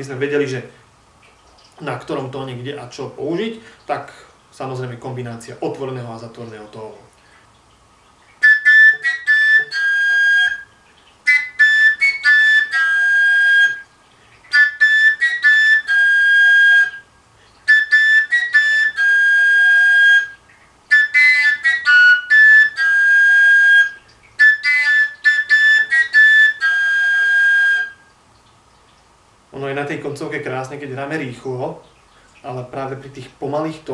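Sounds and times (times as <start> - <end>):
overtone flute phrases: 8.4 - 13.9, 14.5 - 28.1.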